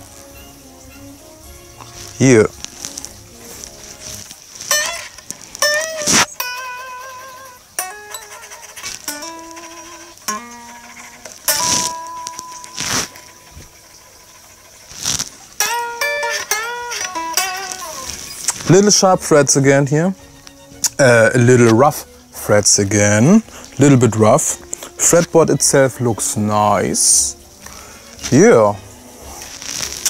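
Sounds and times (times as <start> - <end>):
electric guitar licks: 1.8 - 26.7.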